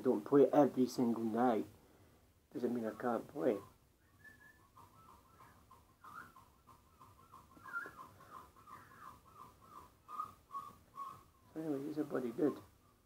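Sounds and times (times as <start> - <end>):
small bird chirping: 2.6 - 13.0.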